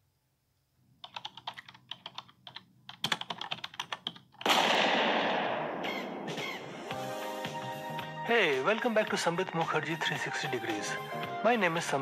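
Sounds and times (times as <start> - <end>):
loud rushing burst: 4.5 - 7.2.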